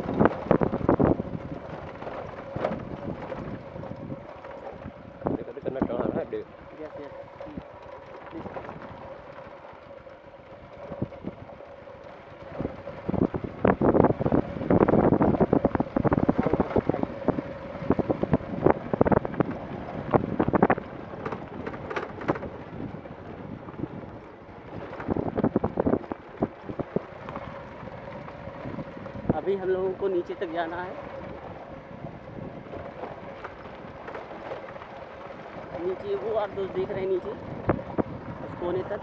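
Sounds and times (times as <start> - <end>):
wind on microphone: 0.0 - 7.7, 10.5 - 39.0
gravel crunching and rattling: 0.0 - 39.0.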